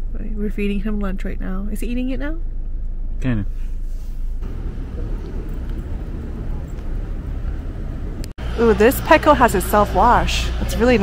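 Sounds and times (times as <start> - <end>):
car engine idling: 0.6 - 11.0.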